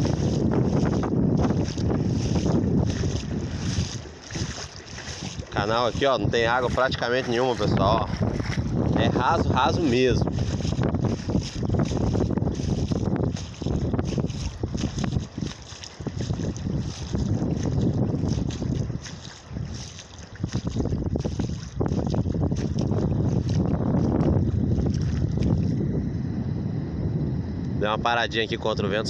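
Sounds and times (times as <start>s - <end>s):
gusty wind on microphone: 0.0s - 29.0s.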